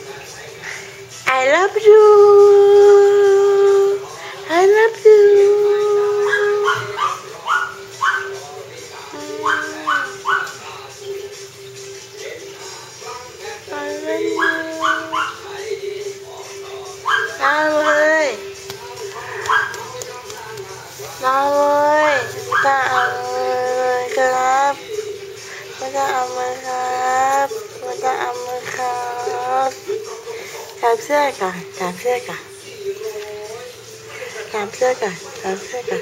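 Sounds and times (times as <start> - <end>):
dog howling: 5.5 - 8.4, 9.1 - 10.7, 13.7 - 15.5, 17.0 - 18.4, 19.4 - 20.0, 21.6 - 24.7
dog yipping and whining: 6.2 - 8.4.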